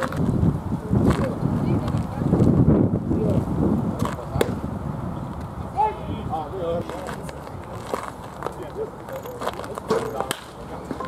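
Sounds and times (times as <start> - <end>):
murmur of voices: 0.0 - 11.0
baseball striking knocks: 4.0 - 4.6, 9.8 - 11.0.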